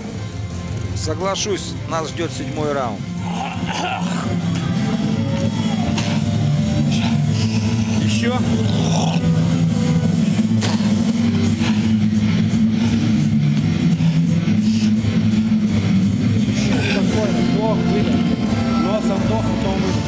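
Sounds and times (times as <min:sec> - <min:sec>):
loud music with low sustained notes: 0:00.0 - 0:20.0
men talking: 0:00.9 - 0:04.3, 0:08.0 - 0:09.0, 0:16.4 - 0:20.0.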